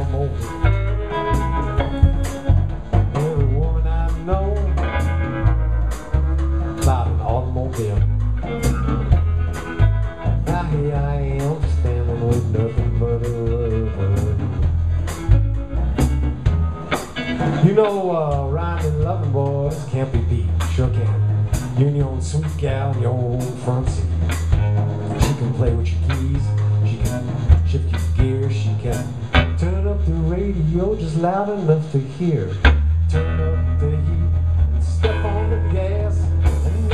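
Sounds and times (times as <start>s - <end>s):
drum and cymbal hits: 0.0s - 36.9s
guitar line with bending notes: 0.0s - 36.9s
live blues band: 0.0s - 36.9s
low bass notes: 0.0s - 36.9s.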